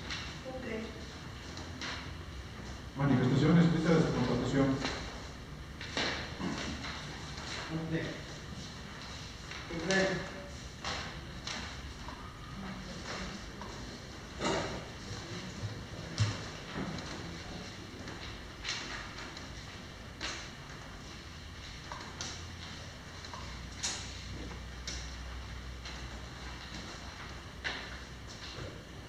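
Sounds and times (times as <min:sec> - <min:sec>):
low room hum: 0:00.0 - 0:29.0
paper rustling: 0:04.0 - 0:12.2.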